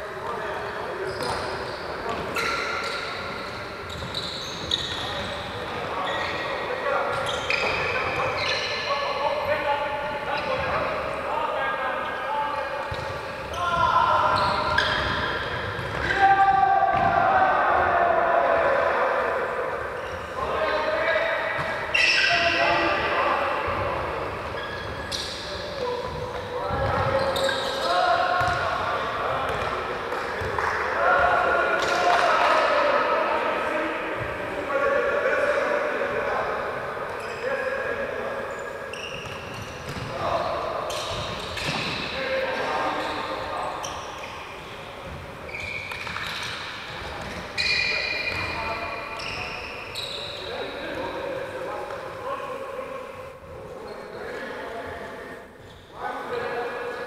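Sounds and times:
ball bouncing on wooden court: 0:12.9 - 0:13.2, 0:28.4 - 0:28.7, 0:39.2 - 0:40.2
players shouting with echo: 0:13.5 - 0:24.3.

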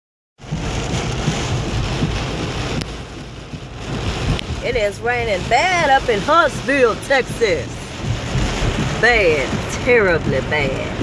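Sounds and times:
deep rumble: 0:00.4 - 0:11.0
heavy rain drumming on car roof: 0:00.4 - 0:11.0.

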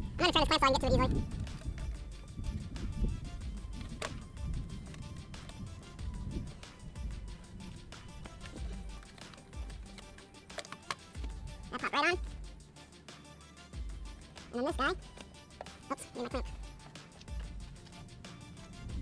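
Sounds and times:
background music: 0:00.0 - 0:19.0
sharp clicks of parts handled: 0:01.3 - 0:02.0, 0:03.7 - 0:05.7, 0:08.0 - 0:11.4, 0:15.0 - 0:15.9.

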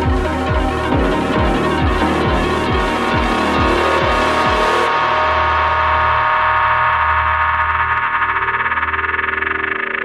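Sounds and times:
held synthesizer chords: 0:00.0 - 0:10.0
low bass drone: 0:00.0 - 0:10.0
gliding synth tones: 0:01.0 - 0:08.6.

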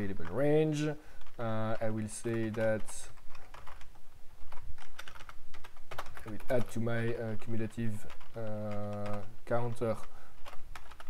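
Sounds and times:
typing on a keyboard: 0:00.0 - 0:11.0.

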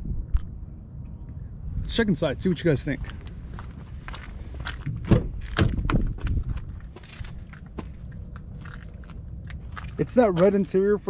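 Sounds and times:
wind rumble on microphone: 0:00.0 - 0:11.0
sharp thump: 0:05.0 - 0:06.3.

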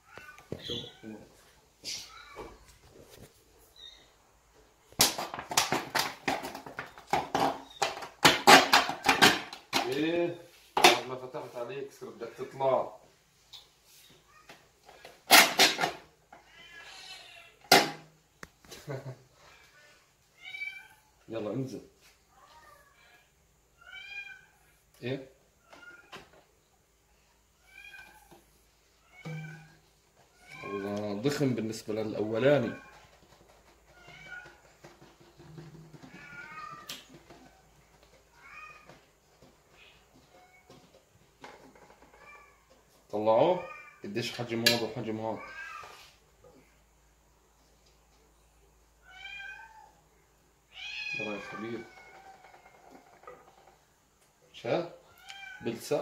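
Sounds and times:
cat meowing faintly: 0:22.3 - 0:24.8, 0:29.0 - 0:31.3, 0:45.3 - 0:46.2, 0:50.7 - 0:53.3
faint high mewing call: 0:29.2 - 0:29.8.

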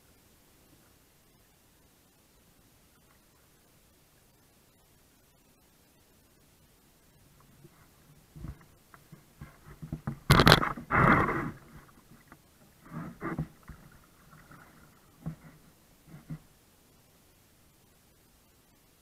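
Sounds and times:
hull scraping: 0:07.6 - 0:16.5.

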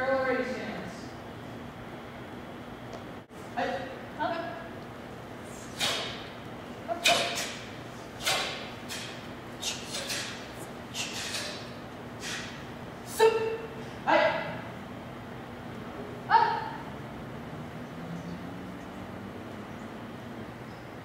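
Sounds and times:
sharp slaps and thuds: 0:08.2 - 0:09.2.

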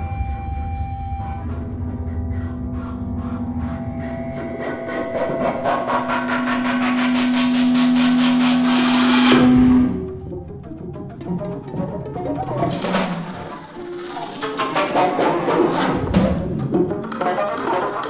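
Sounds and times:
chamber ensemble with electronics: 0:09.2 - 0:18.0.

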